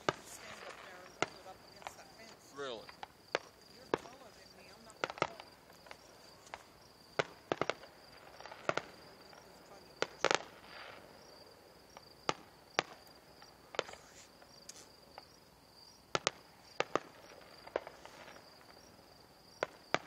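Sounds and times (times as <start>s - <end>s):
fireworks cracks and bangs: 0.0s - 15.4s, 16.0s - 20.0s.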